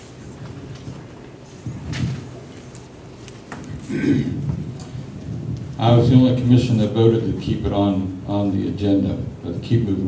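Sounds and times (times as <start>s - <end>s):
microphone handling rumble: 0.4s - 2.5s, 3.6s - 7.8s
man speaking into a microphone: 5.8s - 10.0s.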